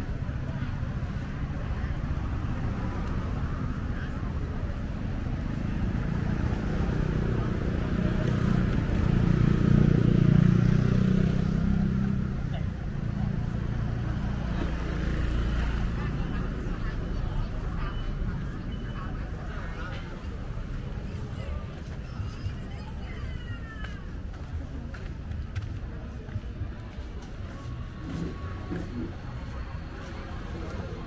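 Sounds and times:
road traffic: 0.0s - 31.0s.

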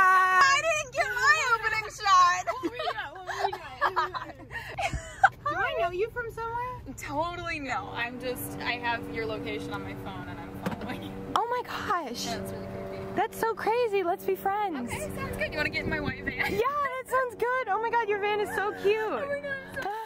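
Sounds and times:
women talking: 0.0s - 20.0s
steady low hum: 4.2s - 20.0s.

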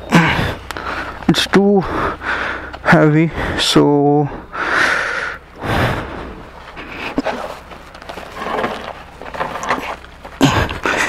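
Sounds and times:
man breathing hard and straining: 0.0s - 8.8s, 9.5s - 11.0s.

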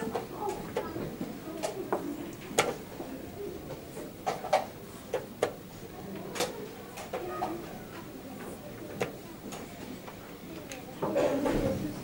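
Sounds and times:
low voices: 0.0s - 12.0s.

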